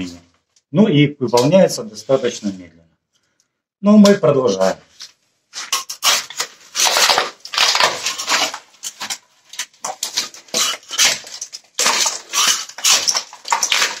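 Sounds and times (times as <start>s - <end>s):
hand saw scraping foam: 10.2s - 14.0s.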